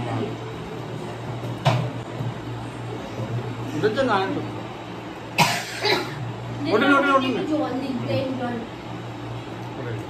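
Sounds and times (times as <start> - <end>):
steady low hum: 0.0 - 10.0
person coughing: 5.4 - 6.2.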